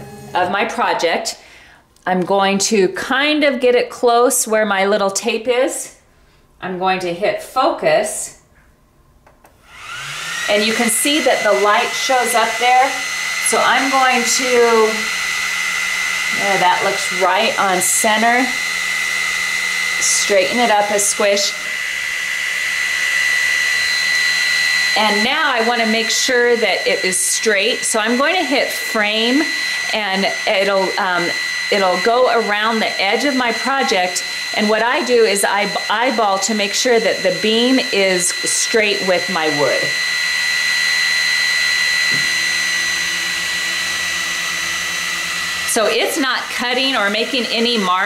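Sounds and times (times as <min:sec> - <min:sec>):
laser cooling fan whirring: 0:09.4 - 0:48.0
stepper motors humming: 0:09.7 - 0:48.0.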